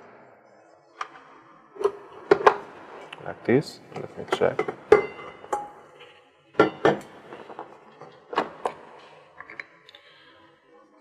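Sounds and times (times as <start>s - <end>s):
metal bowl clinks and knocks: 4.0s - 7.1s.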